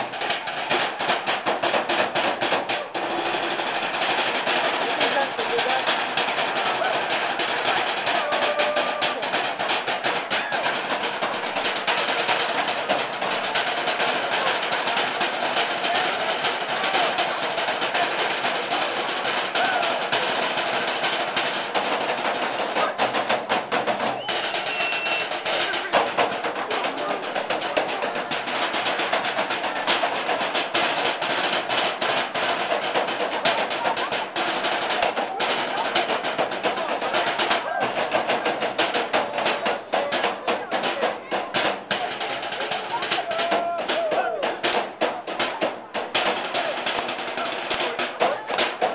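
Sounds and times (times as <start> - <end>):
drumsticks striking metal trash cans: 0.0 - 48.9.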